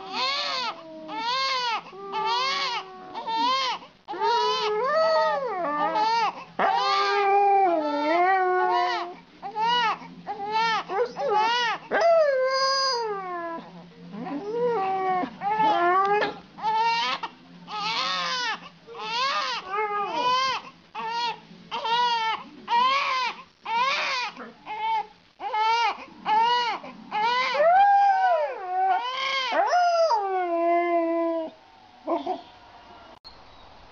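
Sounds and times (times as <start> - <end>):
baby crying: 0.0 - 4.9, 5.8 - 11.9, 14.3 - 27.6, 28.5 - 29.6.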